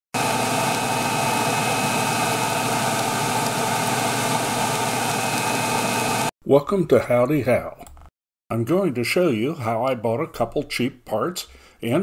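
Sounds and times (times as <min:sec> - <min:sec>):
dust collector blower running: 0:00.2 - 0:06.3.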